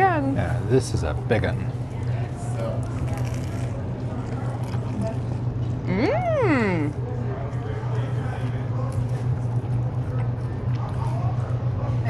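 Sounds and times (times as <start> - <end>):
steady low hum: 0.0 - 12.0
biting and chewing food: 2.7 - 5.8.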